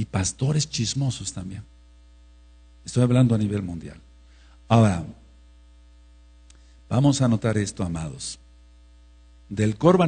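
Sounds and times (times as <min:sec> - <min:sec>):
man speaking: 0:00.0 - 0:01.7, 0:02.8 - 0:04.1, 0:04.7 - 0:05.3, 0:06.9 - 0:08.4, 0:09.5 - 0:10.0
electrical mains hum: 0:00.0 - 0:10.0
faint tick: 0:06.4 - 0:06.6.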